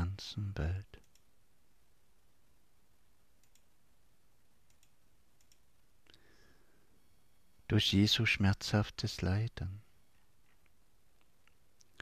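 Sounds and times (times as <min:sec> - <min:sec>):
low hiss: 0:00.0 - 0:12.0.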